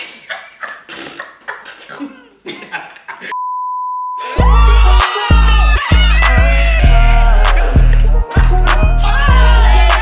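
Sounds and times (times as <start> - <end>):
steady high-pitched beep tone: 3.4 - 4.2.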